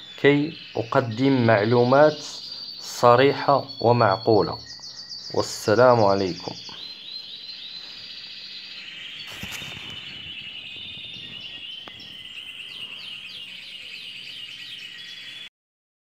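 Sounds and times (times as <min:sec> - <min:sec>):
birds singing trills: 0:00.0 - 0:15.5.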